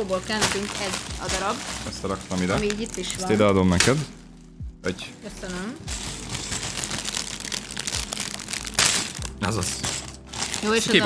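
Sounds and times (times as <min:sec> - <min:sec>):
plastic bag crinkling: 0:00.0 - 0:04.5, 0:05.5 - 0:11.0.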